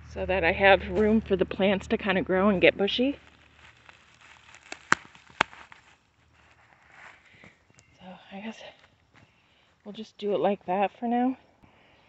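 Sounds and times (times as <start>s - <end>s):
plastic fabric crinkly rustling: 3.0s - 7.4s.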